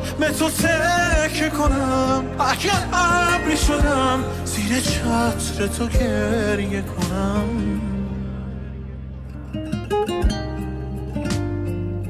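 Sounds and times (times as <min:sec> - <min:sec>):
acoustic guitar picking notes: 0:00.0 - 0:12.0.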